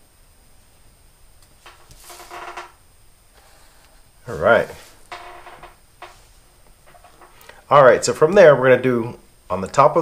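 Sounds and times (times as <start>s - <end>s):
marker squeaking on paper: 1.7s - 2.7s.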